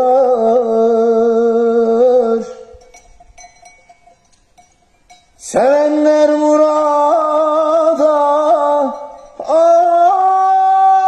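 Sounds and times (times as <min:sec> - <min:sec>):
sheep bells clinking: 0:02.4 - 0:11.0.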